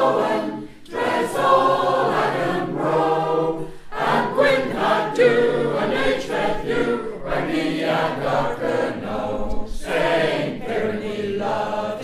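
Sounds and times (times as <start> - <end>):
choir singing folk song: 0.0 - 12.0.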